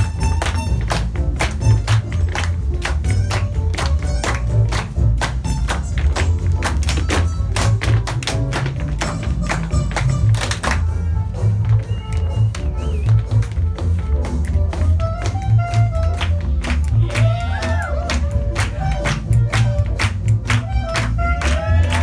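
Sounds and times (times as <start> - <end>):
upbeat swing music: 0.0 - 22.0
tap shoes on wooden floor: 5.5 - 10.6.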